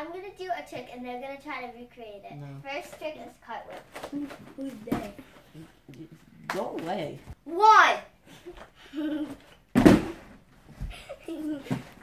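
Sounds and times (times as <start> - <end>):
body thudding onto foam mat: 9.7 - 10.9.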